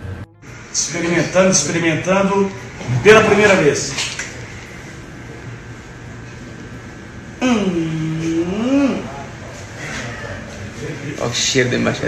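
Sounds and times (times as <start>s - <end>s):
steady room hiss: 0.0s - 12.0s.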